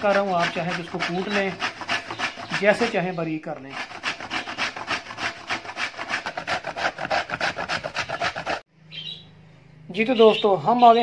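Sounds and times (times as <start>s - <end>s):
grating on metal grater: 0.0s - 8.6s.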